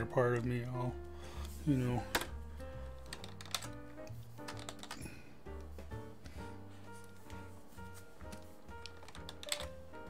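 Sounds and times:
soft background music: 0:00.0 - 0:10.0
computer keyboard keys clicking: 0:02.9 - 0:05.1, 0:08.2 - 0:09.9.

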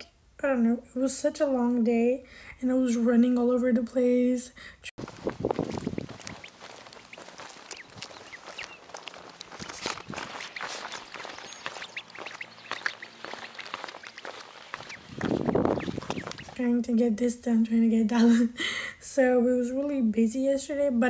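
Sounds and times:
footsteps on pavement: 0:05.0 - 0:16.7
duckling peeping: 0:05.2 - 0:17.1.

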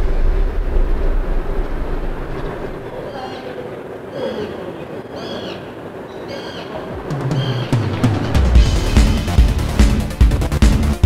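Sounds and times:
loud deep rumble: 0:00.0 - 0:04.0, 0:06.8 - 0:11.0
faint steady hum: 0:00.0 - 0:07.4.

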